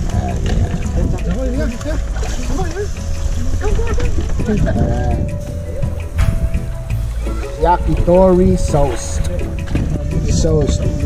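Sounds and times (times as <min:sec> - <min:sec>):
indistinct voices: 0:00.0 - 0:10.8
music: 0:00.0 - 0:11.0
steady low rumble: 0:02.9 - 0:10.1.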